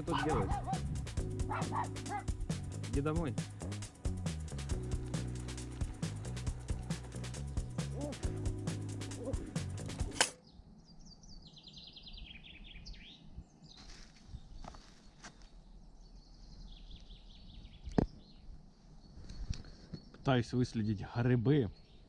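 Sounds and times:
sharp click: 9.8s - 10.4s.

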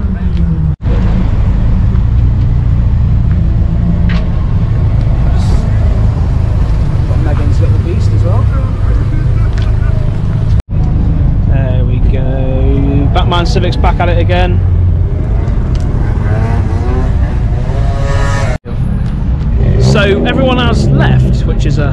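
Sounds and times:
car engines rumbling: 0.0s - 21.9s.

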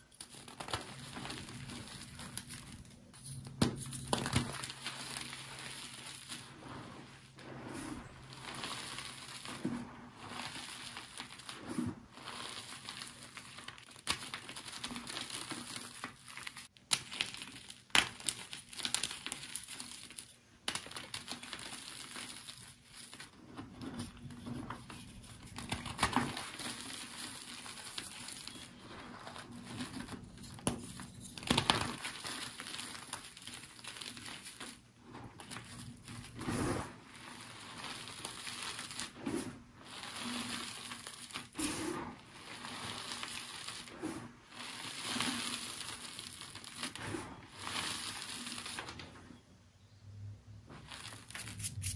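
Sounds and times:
crinkling and crumpling: 0.0s - 49.4s, 50.6s - 51.9s.

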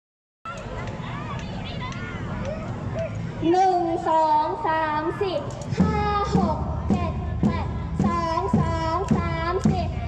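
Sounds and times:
woman counting into a microphone: 3.4s - 6.4s
low thump of a beat: 5.7s - 10.0s.

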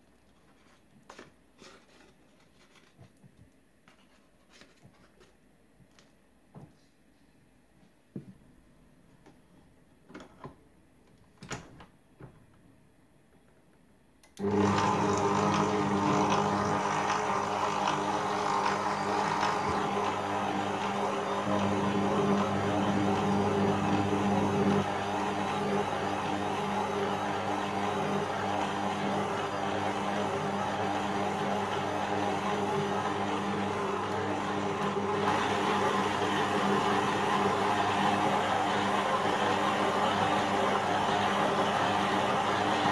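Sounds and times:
stand mixer motor hum: 14.4s - 42.9s.

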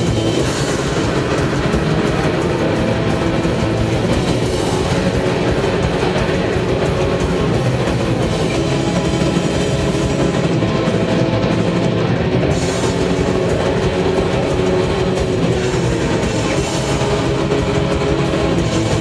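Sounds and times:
distorted electric guitars: 0.0s - 19.0s
drum kit: 0.0s - 19.0s.

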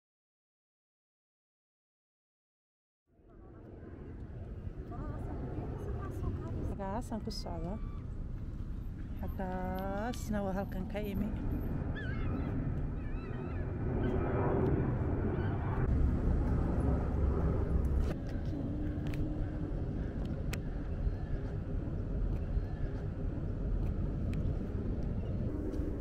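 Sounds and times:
distant engine rumble: 3.3s - 26.0s
single-pitched hum: 3.3s - 26.0s.

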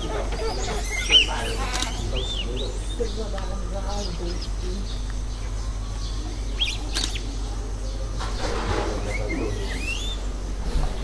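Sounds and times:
birds chirping: 0.0s - 11.0s
steady low rumble: 0.0s - 11.0s.

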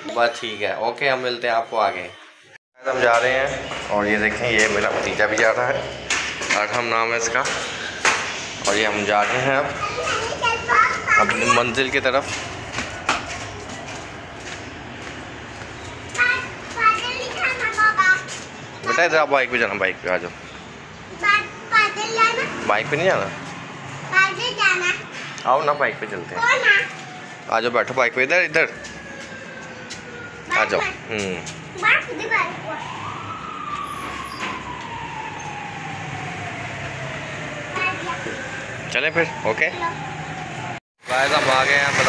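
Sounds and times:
child high-pitched cries: 9.8s - 11.8s
siren wailing: 25.7s - 42.0s.

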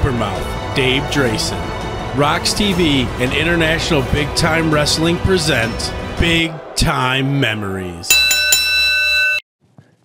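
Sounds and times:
bell-like ringing chord: 8.1s - 9.4s.

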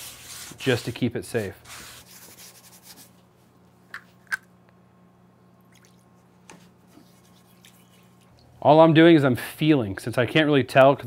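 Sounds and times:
paper towel rubbing skillet: 0.0s - 3.1s
steady low hum: 0.0s - 11.0s.

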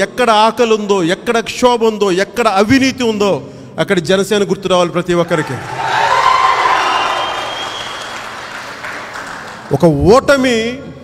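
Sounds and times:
audience applauding: 5.7s - 9.9s.

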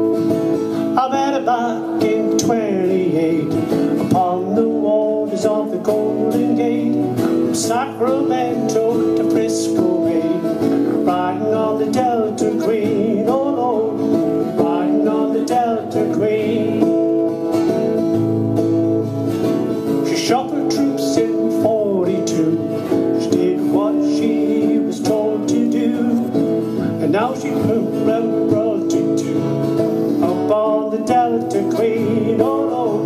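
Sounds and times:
acoustic guitars strumming: 0.0s - 33.0s.

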